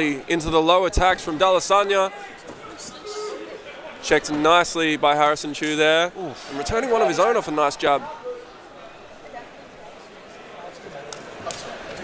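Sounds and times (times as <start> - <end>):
crowd murmuring and shouting: 0.0 - 12.0.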